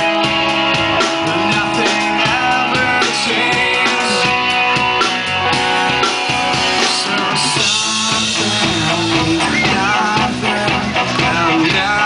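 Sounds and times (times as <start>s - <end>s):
rock band playing live: 0.0s - 12.0s
man singing: 0.9s - 12.0s.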